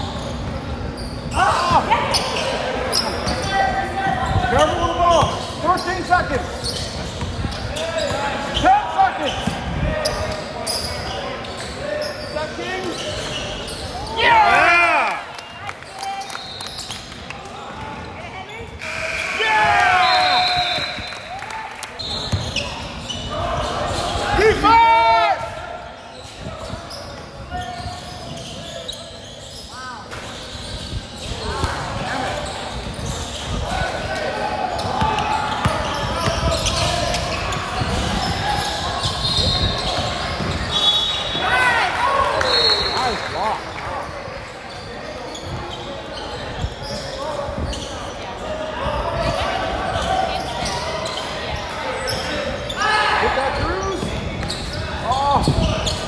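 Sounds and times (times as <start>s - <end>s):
sneakers squeaking on court: 0.0s - 14.2s, 15.9s - 17.1s, 22.0s - 24.3s, 26.0s - 33.6s, 34.2s - 41.4s, 43.6s - 48.5s, 49.2s - 52.8s, 53.5s - 56.0s
players' voices and shouts: 1.3s - 15.3s, 17.5s - 30.1s, 31.3s - 44.2s, 46.2s - 56.0s.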